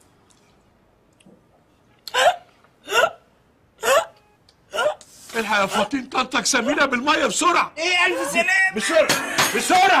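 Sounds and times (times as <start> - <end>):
woman hiccuping: 2.1 - 5.0.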